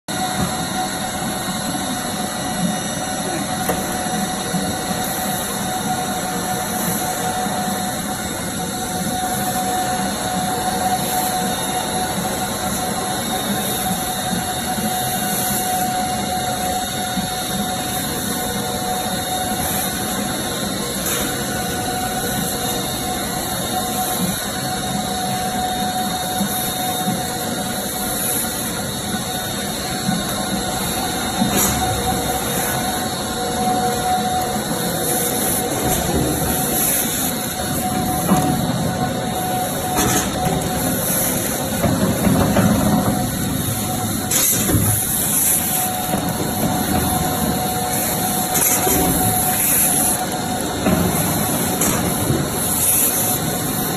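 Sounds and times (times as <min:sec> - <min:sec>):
conveyor machinery running: 0:00.1 - 0:53.9
steady machine whine: 0:00.1 - 0:53.9.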